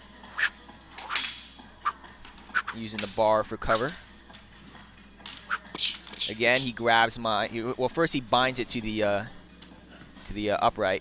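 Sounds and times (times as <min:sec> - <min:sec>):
practice swords swishing and hitting: 0:00.4 - 0:02.8.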